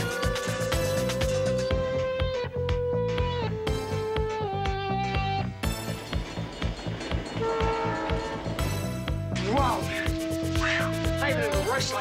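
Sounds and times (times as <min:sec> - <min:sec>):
steady drum beat: 0:00.0 - 0:12.0
train noise: 0:05.6 - 0:12.0
diesel locomotive horn: 0:07.4 - 0:12.0.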